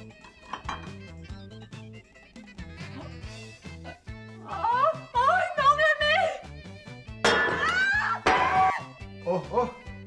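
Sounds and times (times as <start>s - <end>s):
background music with rising tones: 0.0s - 5.2s
porcelain plate smashing: 7.2s - 8.7s.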